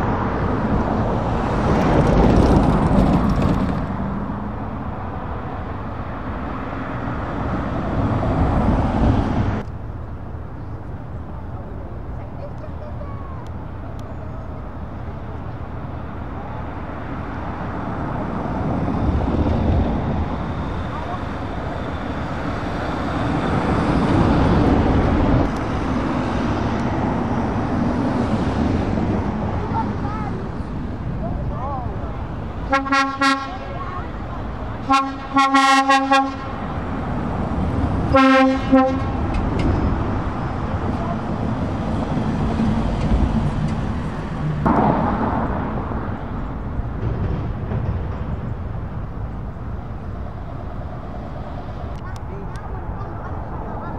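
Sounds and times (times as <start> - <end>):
vans driving past: 0.0 - 53.9.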